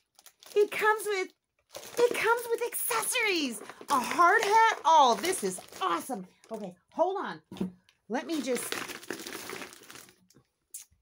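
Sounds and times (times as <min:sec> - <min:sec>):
plastic packaging crinkling: 0:00.0 - 0:06.6, 0:08.3 - 0:10.4.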